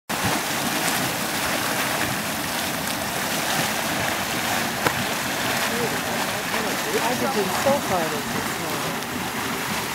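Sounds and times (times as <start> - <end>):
mud gurgling: 0.1 - 9.9.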